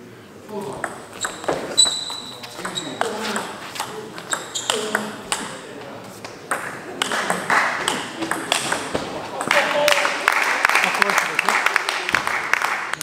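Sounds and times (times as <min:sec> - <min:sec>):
table tennis ball clicking: 0:06.5 - 0:09.7.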